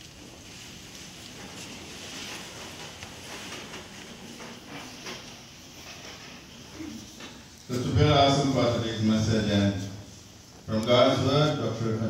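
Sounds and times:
man speaking over pa: 0:07.7 - 0:10.0, 0:10.7 - 0:12.0.

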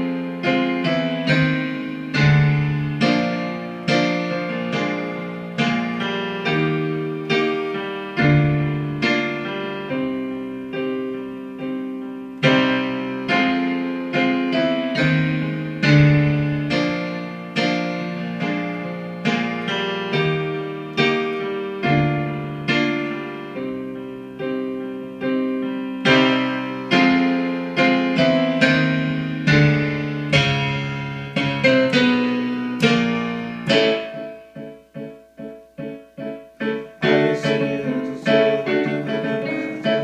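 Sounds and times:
piano chords: 0:00.0 - 0:40.0.

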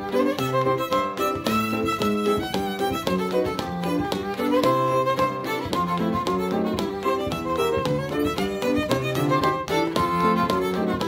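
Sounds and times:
fiddle playing a reel: 0:00.0 - 0:11.0
piano chords: 0:00.0 - 0:11.0.

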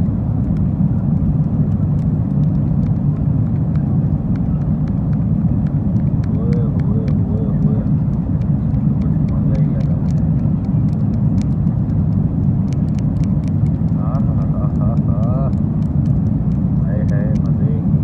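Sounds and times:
airliner cabin drone: 0:00.0 - 0:18.0
faint voices talking: 0:06.2 - 0:11.2, 0:14.0 - 0:15.6.

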